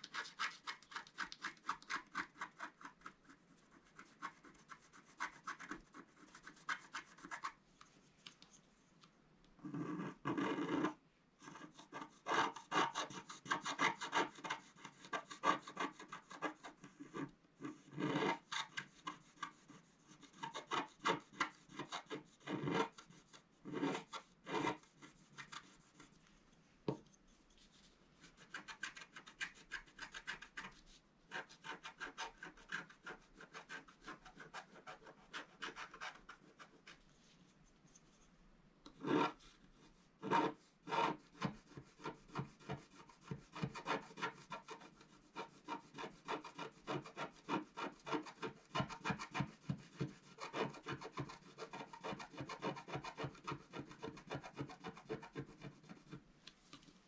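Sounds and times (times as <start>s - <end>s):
stylus scraping scratch card: 0.0s - 7.6s, 9.6s - 26.2s, 28.2s - 37.0s, 39.0s - 39.5s, 40.2s - 56.2s.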